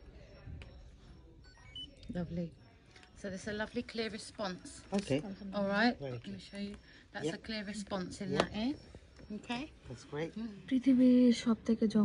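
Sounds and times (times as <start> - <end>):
short electronic beeps: 0.3 - 2.6.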